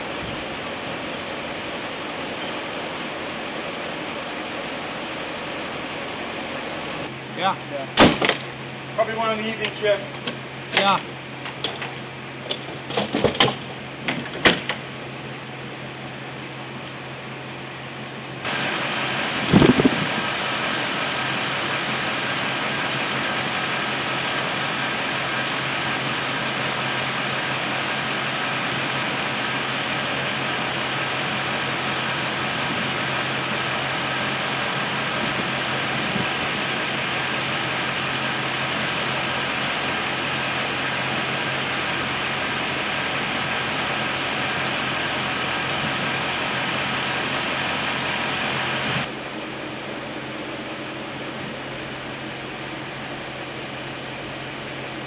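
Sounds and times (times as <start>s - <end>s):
mechanical hum and hiss: 0.0s - 55.0s.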